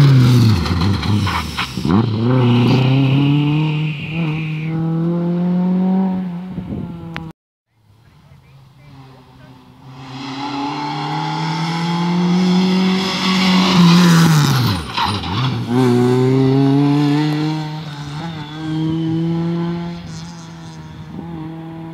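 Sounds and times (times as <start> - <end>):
rally car engine revving: 0.0 - 7.3, 8.8 - 21.9.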